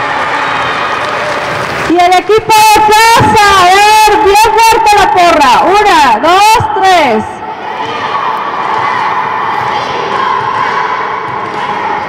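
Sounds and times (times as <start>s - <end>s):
children shouting a team cheer: 7.4s - 12.0s.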